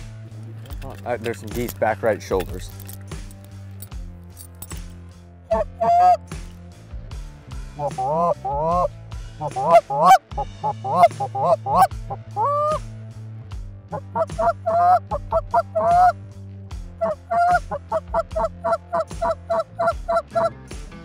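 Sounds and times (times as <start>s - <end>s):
geese honking: 5.5s - 6.2s, 7.8s - 12.8s, 13.9s - 16.1s, 17.0s - 20.5s.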